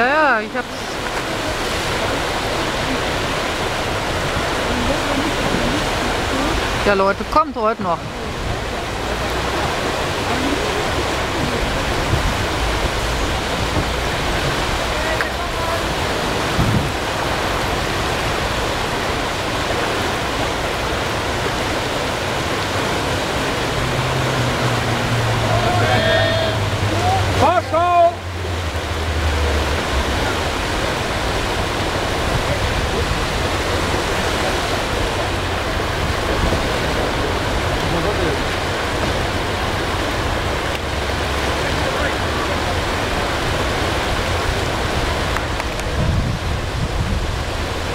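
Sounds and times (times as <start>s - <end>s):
whitewater rushing over rapids: 0.0s - 47.9s.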